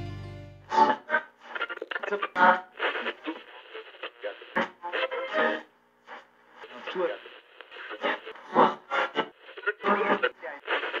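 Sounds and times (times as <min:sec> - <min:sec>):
person talking over radio: 0:09.7 - 0:11.0.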